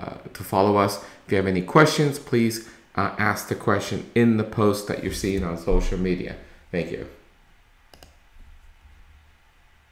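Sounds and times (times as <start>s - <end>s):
computer mouse button clicks: 7.9s - 8.2s.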